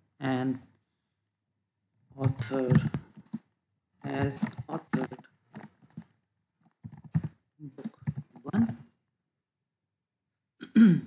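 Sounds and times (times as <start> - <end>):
man speaking: 0.2 - 0.7, 2.2 - 3.0, 4.0 - 5.3, 7.6 - 8.8.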